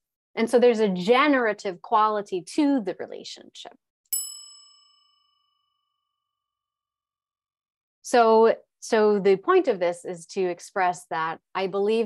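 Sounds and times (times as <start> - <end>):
bell-like chime ding: 4.1 - 6.0.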